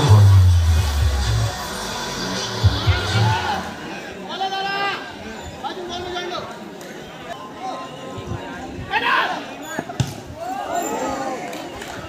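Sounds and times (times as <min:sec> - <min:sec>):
spectators shouting and talking: 0:00.0 - 0:12.0.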